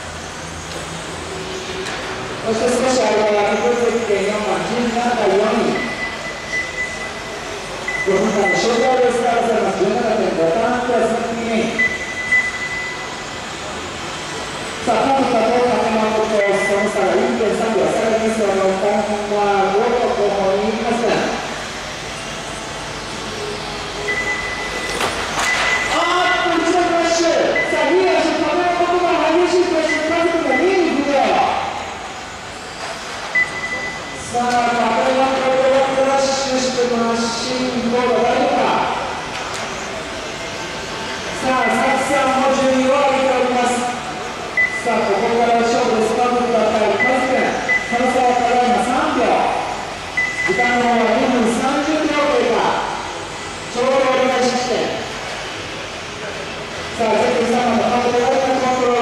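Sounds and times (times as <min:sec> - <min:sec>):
announcer over loudspeaker: 0:02.4 - 0:06.0, 0:08.0 - 0:12.0, 0:14.8 - 0:21.4, 0:25.9 - 0:31.8, 0:41.4 - 0:44.0, 0:44.7 - 0:49.7, 0:50.4 - 0:52.9
short high beeps: 0:05.7 - 0:08.9, 0:11.8 - 0:13.2, 0:24.0 - 0:26.1, 0:27.5 - 0:27.9, 0:29.8 - 0:30.9, 0:33.3 - 0:34.2, 0:44.6 - 0:45.3, 0:46.9 - 0:48.1, 0:50.2 - 0:50.8.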